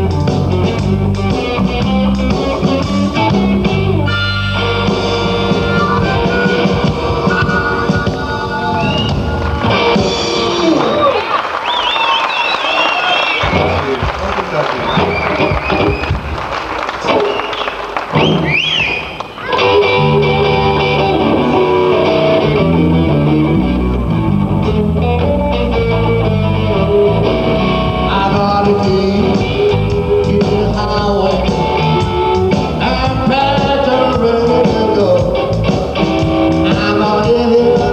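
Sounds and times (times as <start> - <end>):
bass guitar: 0.0 - 12.0, 13.3 - 37.9
drum kit: 0.0 - 37.9
electric guitars: 0.0 - 37.9.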